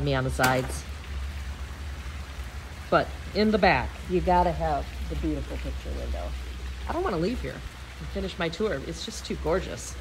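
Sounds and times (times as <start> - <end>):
woman speaking: 0.0 - 0.9, 2.9 - 10.0
pool jet splashing: 0.0 - 10.0.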